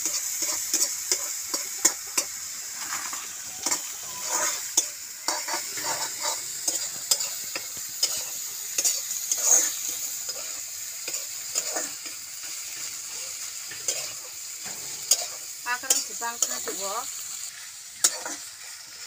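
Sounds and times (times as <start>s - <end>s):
metal spatula scraping pan: 0.0s - 16.9s, 18.0s - 18.5s
greens sizzling in oil: 0.0s - 19.0s.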